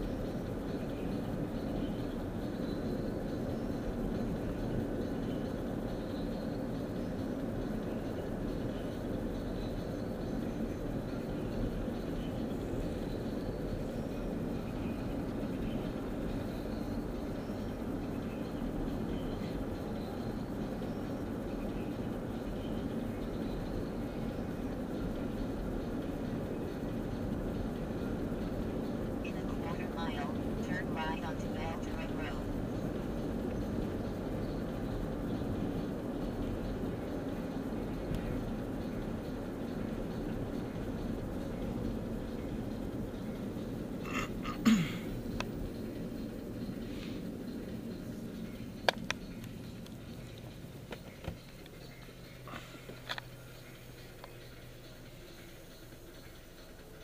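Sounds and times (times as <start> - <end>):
car cabin road and engine drone: 0.0 - 57.0
faint voice: 29.2 - 32.5.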